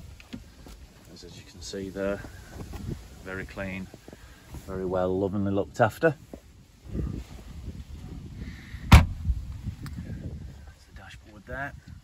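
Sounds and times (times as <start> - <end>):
microphone handling and wind noise: 0.0 - 12.0
car door shutting: 8.9 - 9.2.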